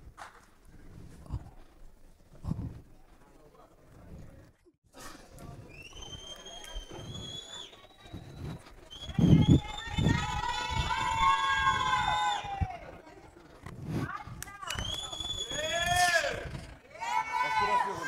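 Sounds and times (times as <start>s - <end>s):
high rising whistle: 5.7s - 12.7s, 14.7s - 16.0s.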